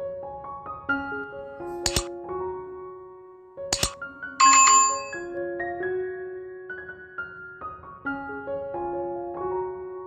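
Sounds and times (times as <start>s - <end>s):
gentle piano music: 0.0s - 10.0s
mouse clicks: 1.9s - 2.1s, 3.8s - 4.0s.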